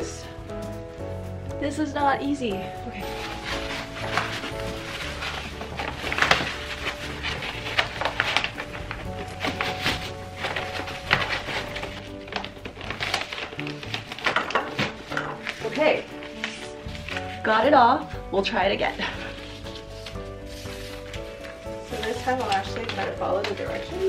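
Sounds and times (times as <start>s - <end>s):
background music with held chords: 0.0s - 24.0s
contact paper crackling as peeled: 3.0s - 17.8s, 19.0s - 24.0s.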